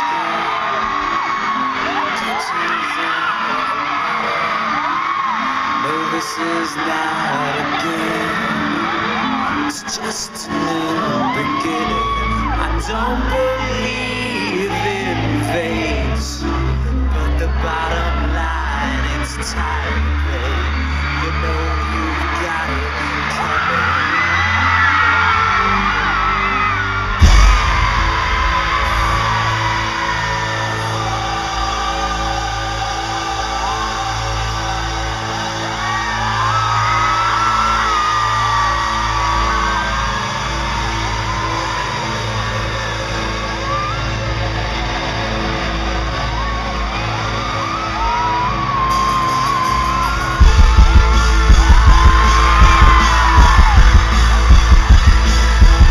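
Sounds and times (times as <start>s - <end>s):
crowd screaming and whooping: 0.0s - 55.9s
heavy drum hits: 27.2s - 30.0s, 50.4s - 55.9s.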